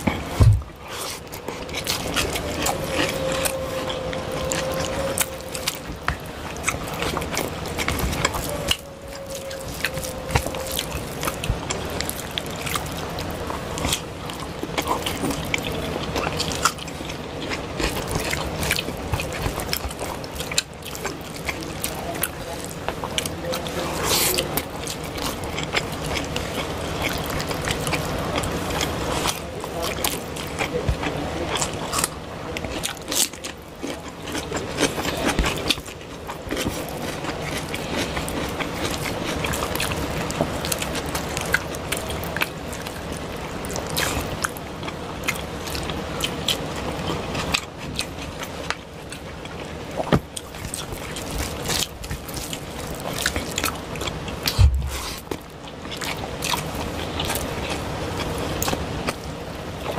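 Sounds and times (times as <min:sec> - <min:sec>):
fingers squishing rice and curry: 0:00.0 - 0:59.9
hands mixing wet food: 0:00.0 - 0:59.9
low thump: 0:00.4 - 0:00.7, 0:54.6 - 0:55.1.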